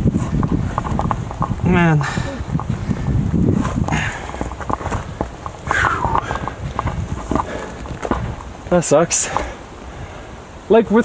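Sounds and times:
low handling rumble: 0.0 - 10.7
scuffs and knocks against rock: 0.2 - 9.6
person sighing: 2.0 - 2.5.

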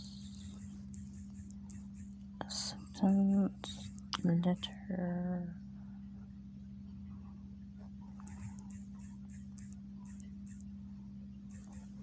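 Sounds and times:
person whispering: 0.0 - 0.7, 2.4 - 5.6
steady low hum: 0.0 - 12.0.

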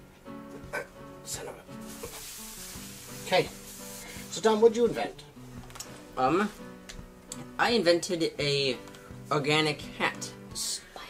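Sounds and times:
background music: 0.0 - 11.0
steady hiss: 1.4 - 4.6.

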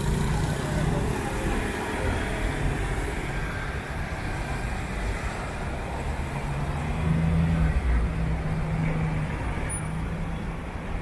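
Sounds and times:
road noise rumble: 0.0 - 11.0.

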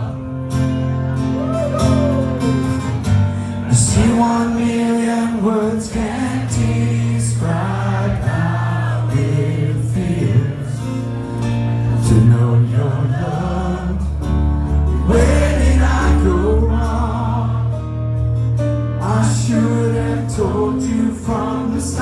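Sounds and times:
strummed acoustic guitar: 0.0 - 22.0
man singing: 3.6 - 11.0, 11.9 - 14.2, 14.9 - 17.8, 19.0 - 22.0
audience singing along: 3.6 - 18.3, 18.9 - 22.0.

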